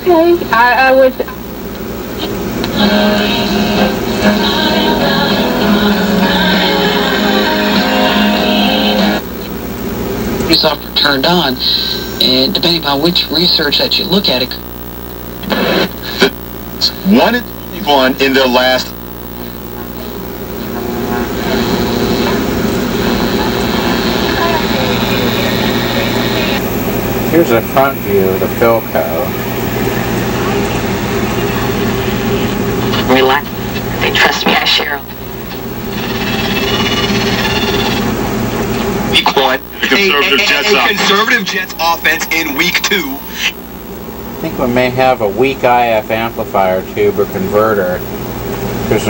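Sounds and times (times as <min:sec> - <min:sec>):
radio noise: 0:00.0 - 0:49.0
steady hum: 0:00.0 - 0:49.0
music through radio speaker: 0:02.2 - 0:09.2, 0:10.4 - 0:43.6
faint voice on radio: 0:15.4 - 0:26.6.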